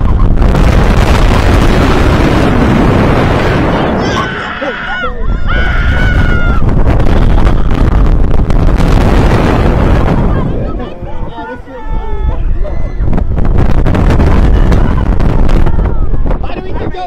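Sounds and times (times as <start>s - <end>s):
wind buffeting microphone: 0.0s - 17.0s
riders screaming: 3.6s - 7.7s.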